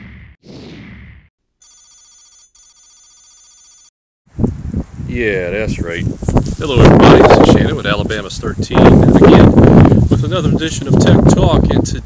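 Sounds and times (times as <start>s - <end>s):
electronic telephone ring: 1.6s - 3.9s
wind on microphone: 4.3s - 12.0s.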